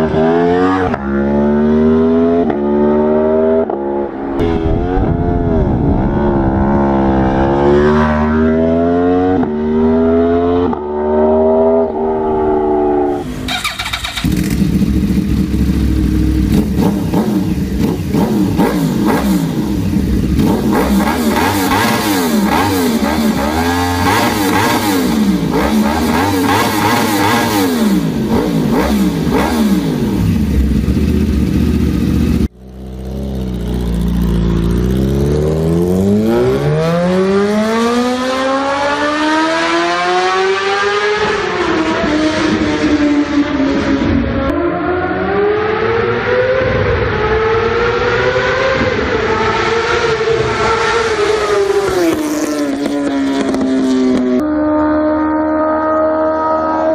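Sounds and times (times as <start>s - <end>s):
motorcycle engine accelerating: 0.0s - 56.9s
motorcycle engines revving: 0.0s - 56.9s.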